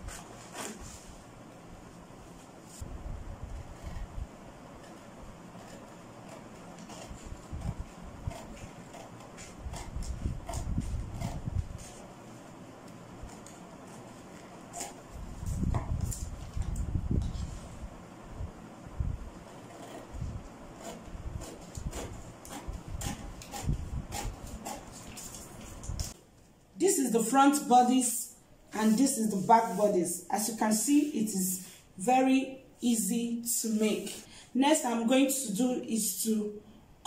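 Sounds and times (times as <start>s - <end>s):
scissors snipping paper: 5.6s - 12.0s, 20.8s - 26.2s
paper rustling: 24.5s - 26.1s.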